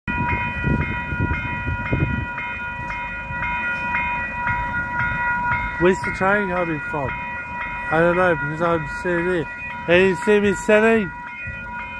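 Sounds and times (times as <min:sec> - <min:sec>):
level crossing warning bell: 0:00.1 - 0:11.9.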